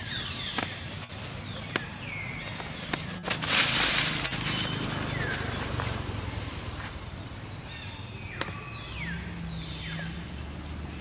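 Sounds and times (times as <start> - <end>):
rustling dry leaves: 0.0 - 11.0.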